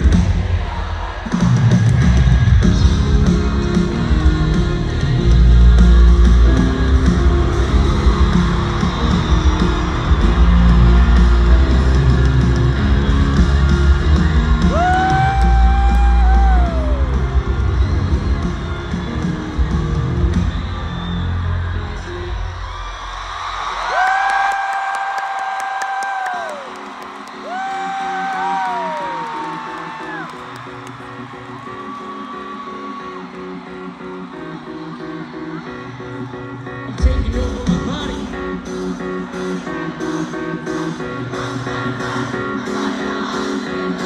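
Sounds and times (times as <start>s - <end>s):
audience whooping: 0.6s - 36.7s
live rock music: 1.4s - 22.5s, 34.8s - 44.0s.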